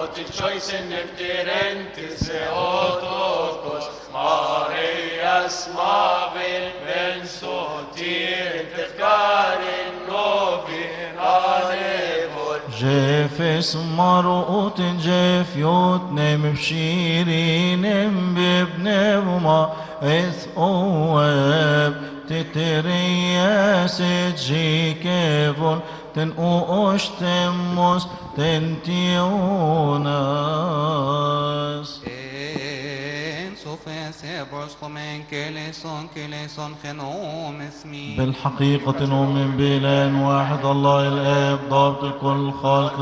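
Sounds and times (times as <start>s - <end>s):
male voices chanting a hymn: 0.0s - 43.0s.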